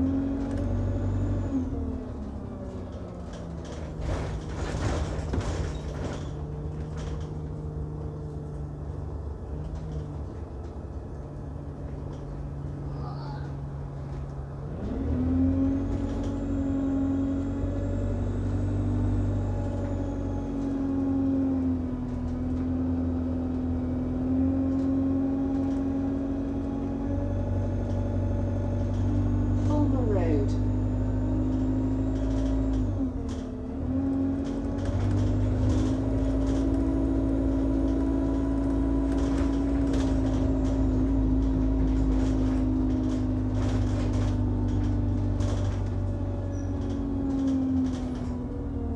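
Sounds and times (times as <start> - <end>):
bus engine droning inside: 0.0 - 48.9.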